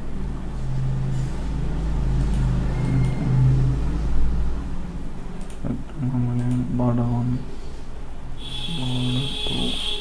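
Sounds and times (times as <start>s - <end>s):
low droning hum: 0.0s - 9.8s.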